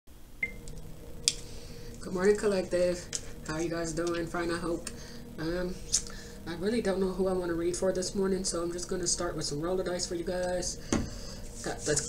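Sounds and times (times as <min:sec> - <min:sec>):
faint electrical hum: 0:00.1 - 0:12.0.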